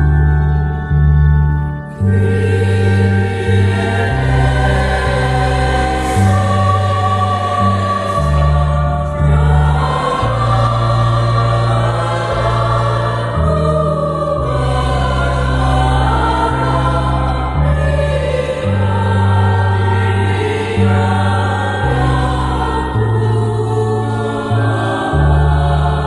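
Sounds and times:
choir singing a hymn: 0.0 - 26.0
electronic keyboard chords: 0.0 - 26.0.

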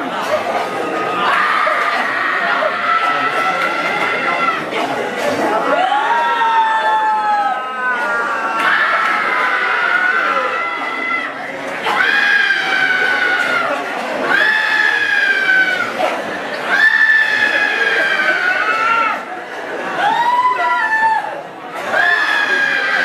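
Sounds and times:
people screaming: 0.0 - 4.8, 5.6 - 23.0.

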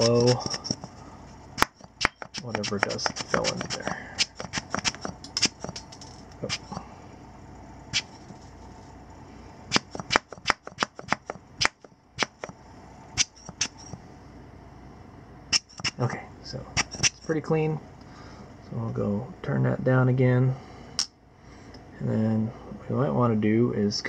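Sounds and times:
air blower bulb puffing: 1.6 - 6.9, 9.7 - 12.6.

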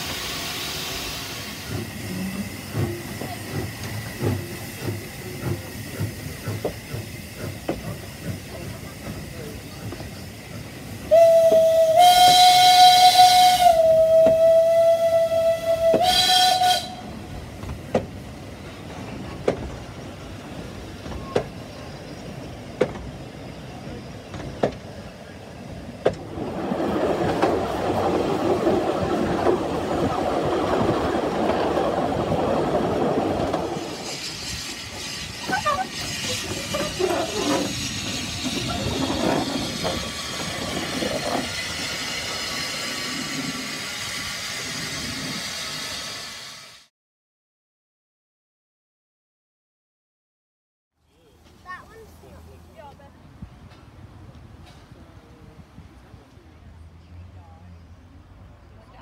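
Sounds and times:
rumble of moving carriages: 1.9 - 11.9, 16.8 - 33.9, 35.2 - 41.5, 51.0 - 59.0
steam locomotive whistle: 11.0 - 17.2.

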